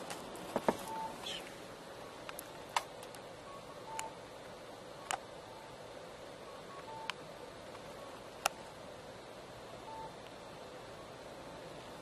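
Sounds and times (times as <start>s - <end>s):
electronic beeps: 0.9s - 1.4s, 6.4s - 7.2s, 9.8s - 10.2s.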